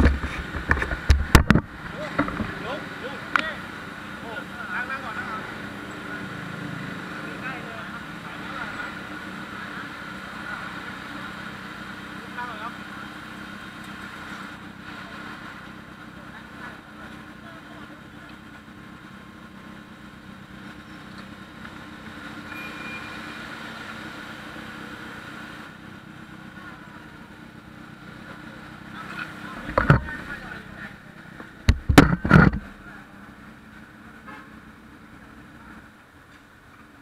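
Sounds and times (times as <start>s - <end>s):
scooter engines idling and pulling away: 0.0s - 37.0s
short loud thumps: 31.6s - 32.8s.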